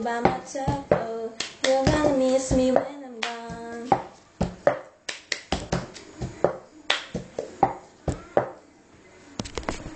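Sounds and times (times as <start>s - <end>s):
hand claps: 0.9s - 7.8s.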